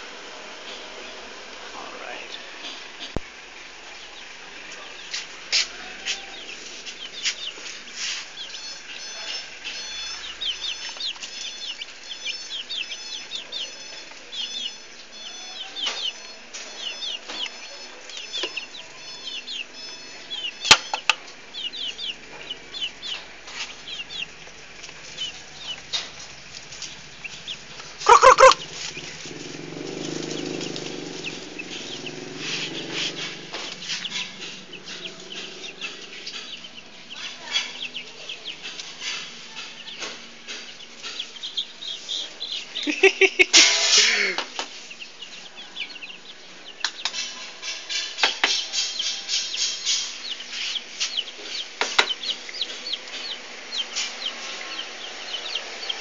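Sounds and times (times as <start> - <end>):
chicks peeping: 0.0 - 56.0
brief loud chicken call: 28.0 - 28.7.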